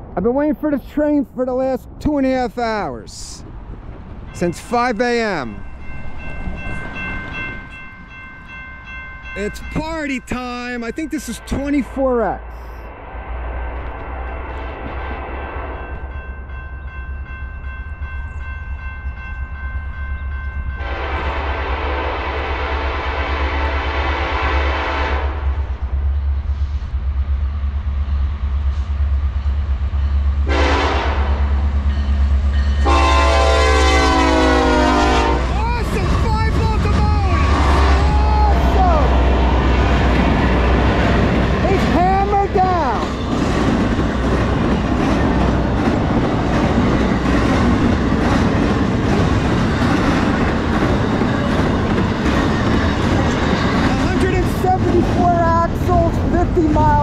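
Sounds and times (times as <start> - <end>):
freight train engine rumble: 0.0 - 57.0
locomotive horn blasts: 20.8 - 25.5, 30.4 - 31.4, 32.8 - 35.6, 37.3 - 38.2.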